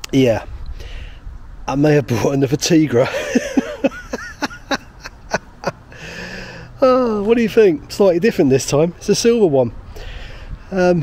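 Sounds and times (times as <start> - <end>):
man chuckling: 3.0 - 6.2.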